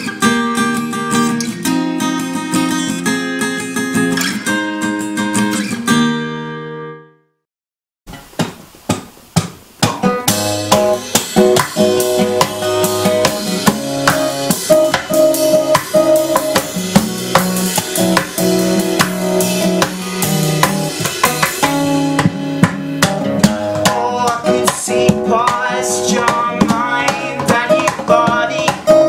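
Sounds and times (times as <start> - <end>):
strummed acoustic guitar: 0.0 - 7.1, 9.4 - 29.0
cajon beat: 8.1 - 29.0.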